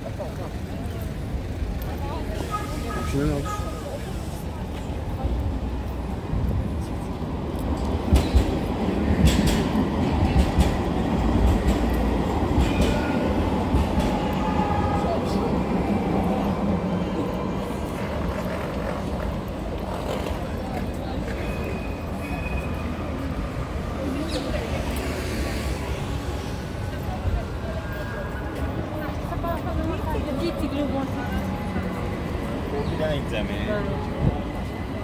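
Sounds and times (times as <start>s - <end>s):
passers-by talking: 0.0s - 35.0s
tram rumbling on rails: 0.0s - 35.0s.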